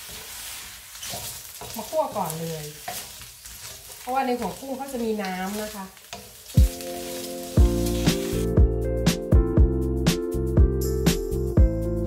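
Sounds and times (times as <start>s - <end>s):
shrimp sizzling in a wok: 0.0s - 8.6s
background music with drum beat: 6.6s - 12.0s.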